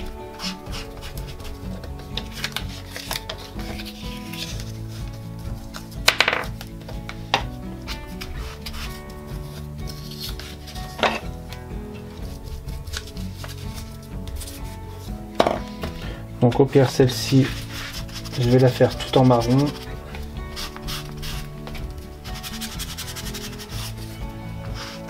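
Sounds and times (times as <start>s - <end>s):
foam tool scuffing on paper: 0.0s - 6.0s, 7.2s - 11.2s, 16.8s - 25.0s
soft background music: 0.0s - 25.0s.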